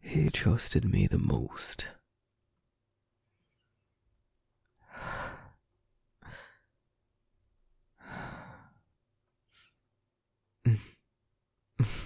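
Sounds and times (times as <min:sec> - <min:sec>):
man breathing and sighing: 0:04.8 - 0:06.8, 0:08.0 - 0:09.9, 0:10.6 - 0:11.1, 0:11.8 - 0:12.0.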